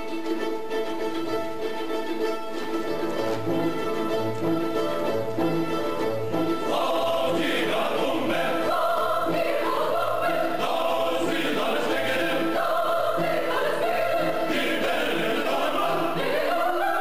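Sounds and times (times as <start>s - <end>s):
orchestral music: 0.0s - 17.0s
choir singing: 3.4s - 17.0s.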